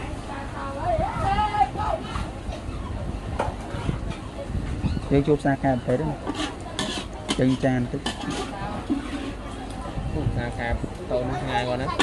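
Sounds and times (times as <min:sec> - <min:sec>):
metal spatula scraping wok: 0:06.2 - 0:09.5.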